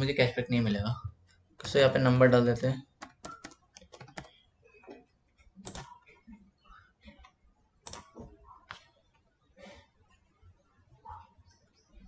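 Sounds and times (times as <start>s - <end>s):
typing on computer keyboard: 3.0s - 5.0s, 5.6s - 6.0s, 7.8s - 8.8s.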